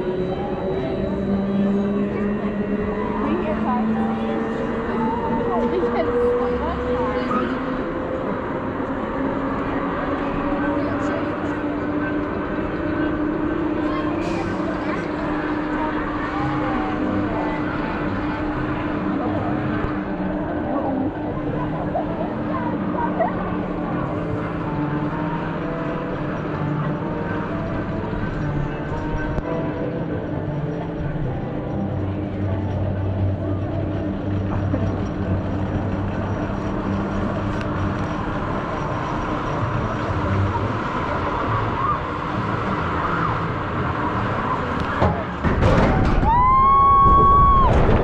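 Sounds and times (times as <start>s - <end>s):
ride machinery low hum: 0.0s - 48.0s.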